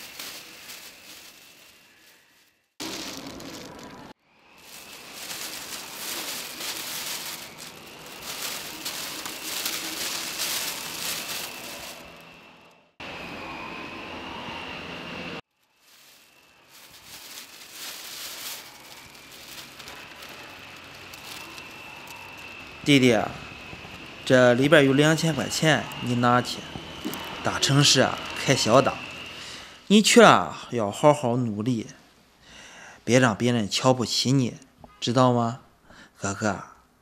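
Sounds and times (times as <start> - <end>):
faint high whine: 0.0 - 30.7.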